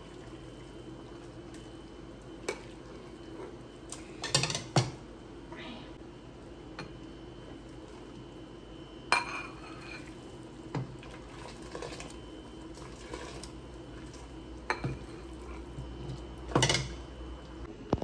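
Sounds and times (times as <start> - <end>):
low steady hum: 0.0 - 18.0
liquid pouring: 10.0 - 16.2.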